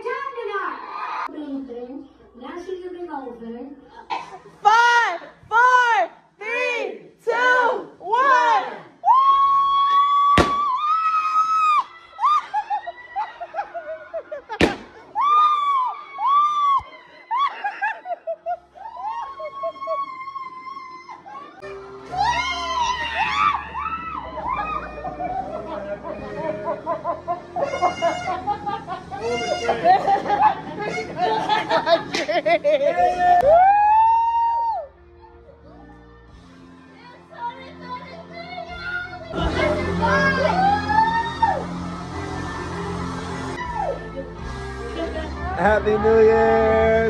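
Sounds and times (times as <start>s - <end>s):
party popper pop: 10.4s - 10.8s, 14.6s - 15.0s
people shrieking and shouting: 18.7s - 30.2s, 38.4s - 44.4s.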